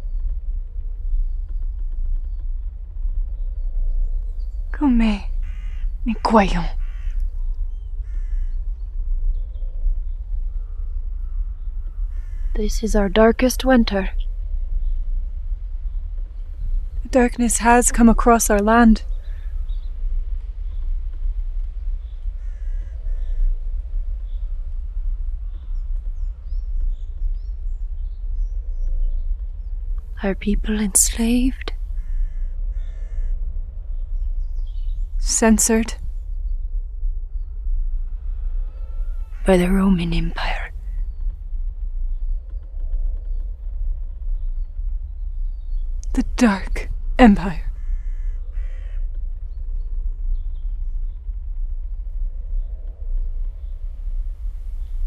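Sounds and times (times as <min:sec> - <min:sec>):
steady low hum: 0:00.0 - 0:55.0
steady low rumble: 0:00.0 - 0:55.0
crows cawing: 0:05.4 - 0:05.9.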